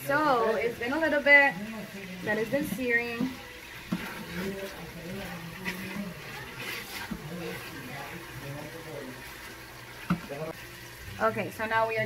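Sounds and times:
chicken sizzling in oil: 0:00.0 - 0:12.0
low background voices: 0:01.6 - 0:10.5.

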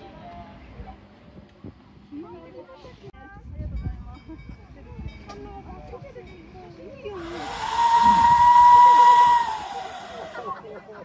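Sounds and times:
steam hissing: 0:07.2 - 0:10.6
steam locomotive whistle: 0:07.2 - 0:10.6.

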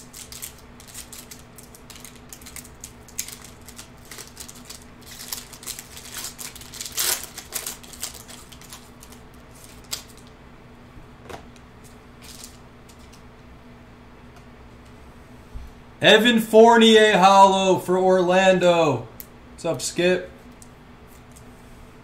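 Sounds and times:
foil wrapper crinkling and tearing: 0:00.0 - 0:10.3, 0:12.2 - 0:13.2
faint steady hum: 0:00.0 - 0:22.0.

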